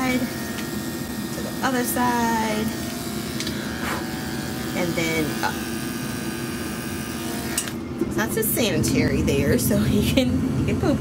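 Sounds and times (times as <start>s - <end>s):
electric clippers humming: 0.0s - 8.1s.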